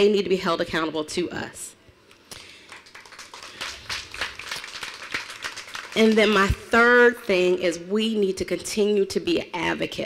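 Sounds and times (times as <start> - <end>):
audience clapping: 2.3 - 6.6.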